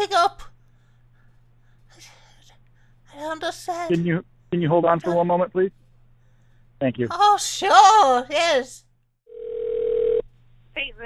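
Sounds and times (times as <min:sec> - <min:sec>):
telephone line beep: 0:09.3 - 0:10.2.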